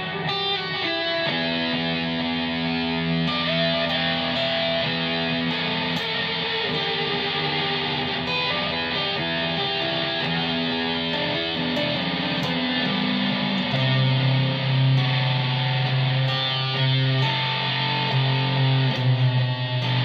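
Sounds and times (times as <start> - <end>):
distorted electric guitar with delay: 0.0 - 20.0.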